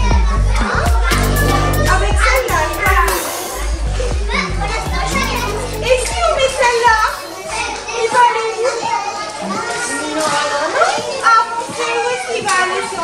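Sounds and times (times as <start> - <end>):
children chattering and calling out: 0.0 - 13.0
low rumble: 1.1 - 7.2.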